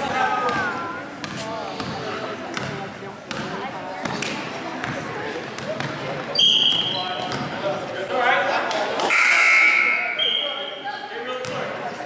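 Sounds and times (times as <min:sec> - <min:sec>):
people's voices: 0:00.0 - 0:12.0
basketball bouncing: 0:00.4 - 0:06.1
sneakers squeaking on court: 0:00.5 - 0:07.6.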